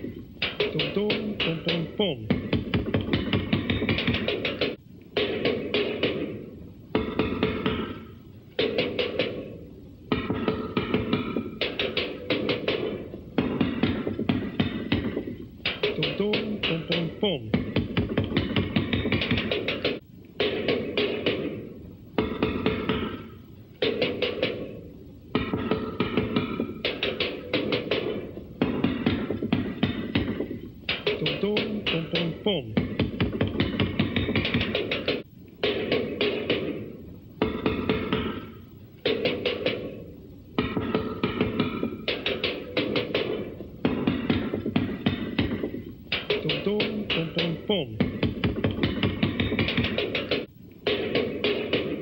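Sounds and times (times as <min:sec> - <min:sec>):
rapid drum kit rolls: 0:10.1 - 0:24.8, 0:25.4 - 0:40.0, 0:40.6 - 0:52.0.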